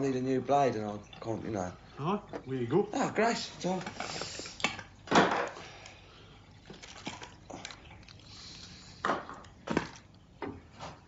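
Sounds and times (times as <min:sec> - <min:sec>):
toiletries clattering: 0:00.0 - 0:05.8.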